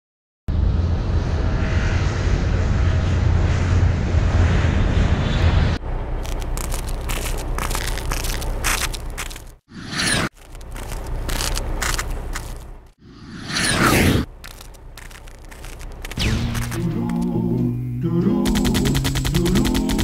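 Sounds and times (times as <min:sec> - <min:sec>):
heavy engine rumble: 0:05.8 - 0:09.7, 0:10.3 - 0:13.0, 0:14.2 - 0:19.8
scattered gunfire cracks: 0:16.1 - 0:17.2.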